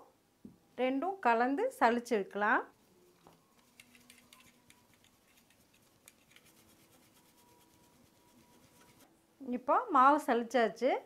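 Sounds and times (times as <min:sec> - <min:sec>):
steel sieve scratching: 0:03.6 - 0:09.1.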